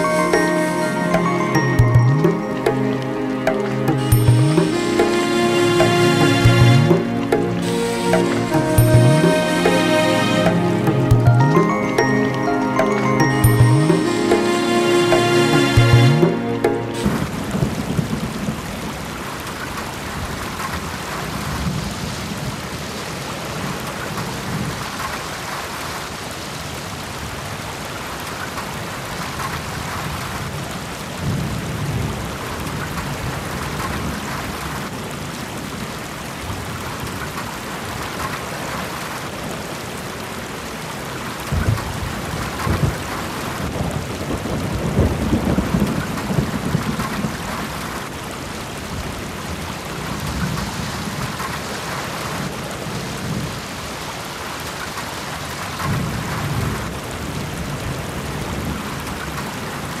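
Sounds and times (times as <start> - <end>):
rain-like hiss: 0.0 - 60.0.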